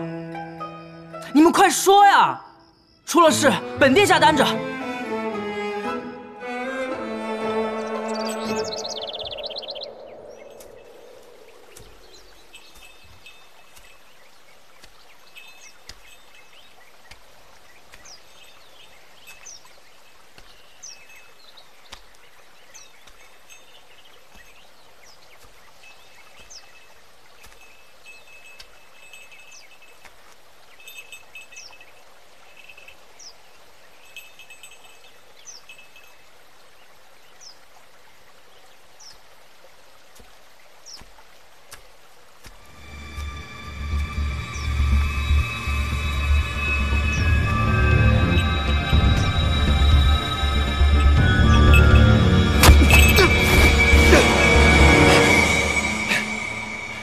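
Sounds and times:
orchestral string music: 0:00.0 - 0:01.9, 0:03.1 - 0:12.1, 0:42.4 - 0:57.0
faint outdoor hiss: 0:00.0 - 0:57.0
birds chirping: 0:07.2 - 0:30.0, 0:42.5 - 0:57.0.

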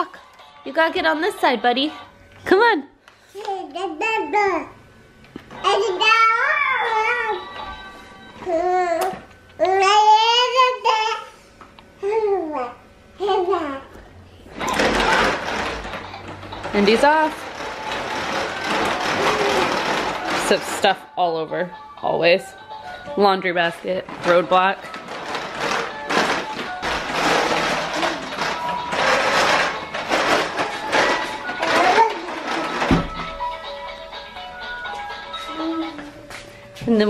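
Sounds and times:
music: 0:00.0 - 0:02.9, 0:05.3 - 0:09.6, 0:14.4 - 0:37.0
plastic walker wheels rumbling: 0:14.5 - 0:21.4, 0:23.0 - 0:36.0.

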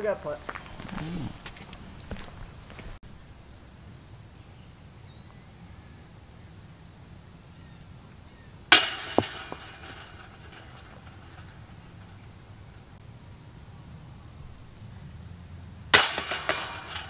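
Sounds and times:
insects droning: 0:00.0 - 0:17.0
disc hitting metal chains: 0:08.7 - 0:12.5, 0:15.9 - 0:17.0.

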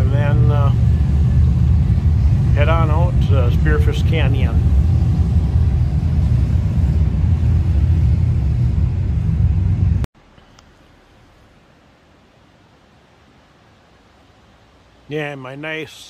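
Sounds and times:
motorcycle engine running loud: 0:00.0 - 0:10.0
faint outdoor background hush: 0:00.0 - 0:16.0.

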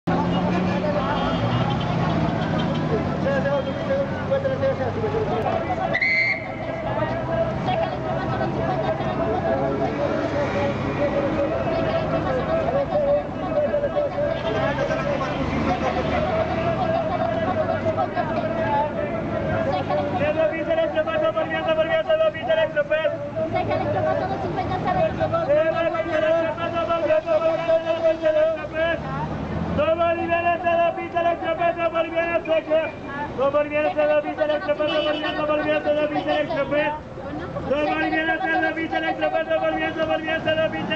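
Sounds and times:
street traffic: 0:00.0 - 0:40.9
vehicle engines at low speed: 0:00.0 - 0:40.9
people talking: 0:00.1 - 0:29.2, 0:29.8 - 0:40.9.

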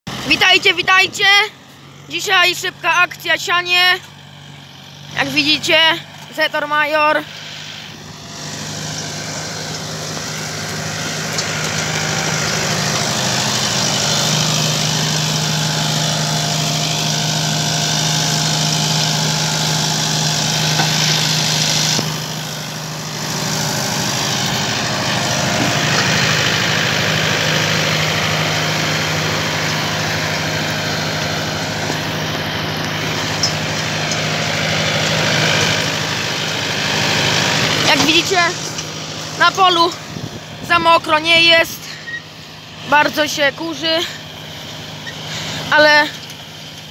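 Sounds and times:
tractor diesel engine under load: 0:00.1 - 0:46.9.

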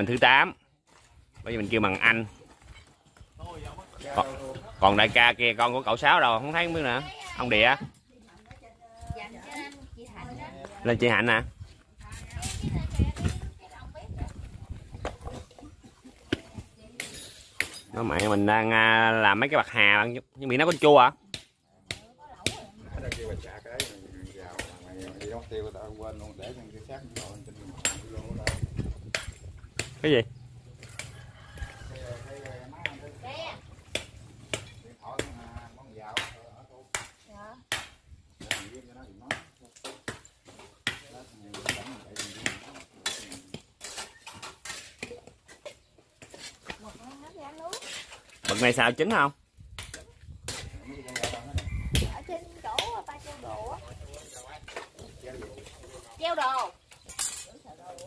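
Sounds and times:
metal spatula scraping in wok: 0:47.7 - 0:48.6.

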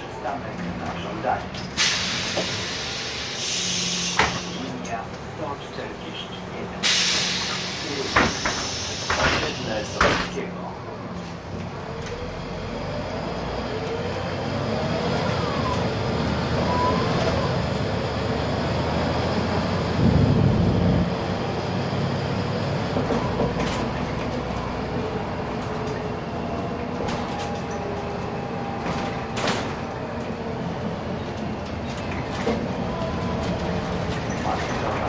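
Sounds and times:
bus engine and transmission whine: 0:00.0 - 0:35.0
road noise: 0:00.0 - 0:35.0.

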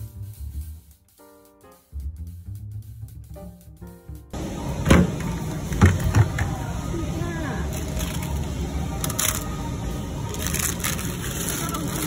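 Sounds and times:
plastic wrappers crinkling: 0:07.6 - 0:09.6, 0:10.2 - 0:12.0.

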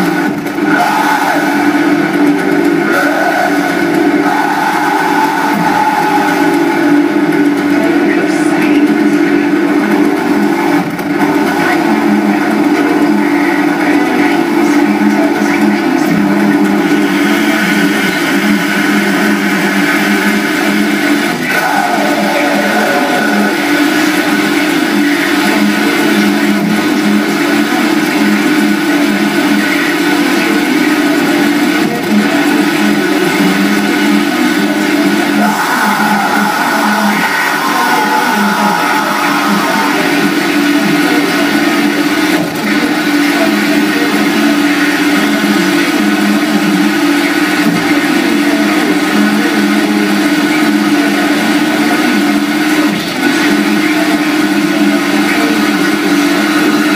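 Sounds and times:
sustained droning tones: 0:00.0 - 0:56.9
wall of distorted noise: 0:00.0 - 0:56.9.

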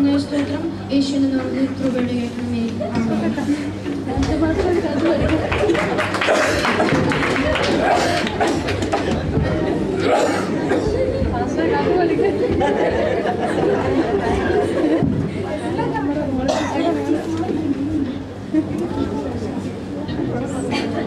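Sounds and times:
people chattering: 0:00.0 - 0:21.0.

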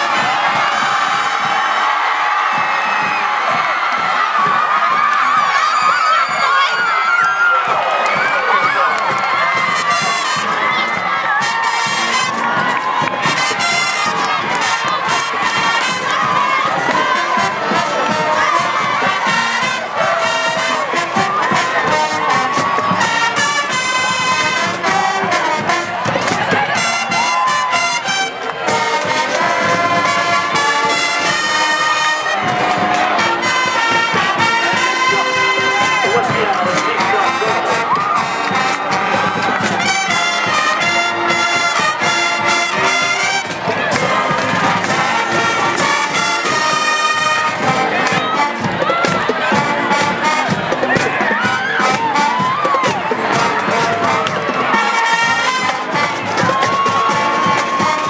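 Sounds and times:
cheerleaders shouting: 0:00.0 - 0:58.0
crowd cheering and shouting: 0:00.0 - 0:58.0
marching band playing: 0:00.0 - 0:58.0.

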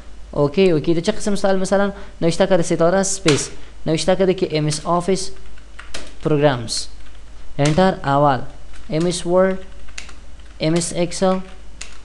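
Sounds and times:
person speaking: 0:00.0 - 0:12.0
typing on computer keyboard: 0:05.4 - 0:06.3, 0:08.7 - 0:12.0.

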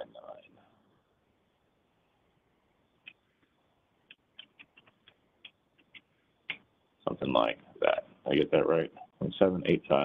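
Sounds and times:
computer keyboard keystrokes: 0:04.1 - 0:06.6.

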